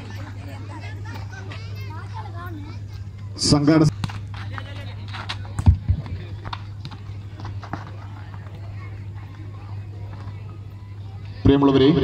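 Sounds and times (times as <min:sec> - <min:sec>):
distant voices: 0:00.0 - 0:12.0
steady low hum: 0:00.0 - 0:12.0.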